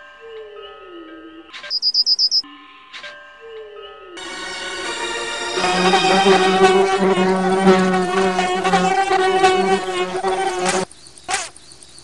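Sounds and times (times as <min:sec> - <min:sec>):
insect wings buzzing: 0:05.6 - 0:11.6.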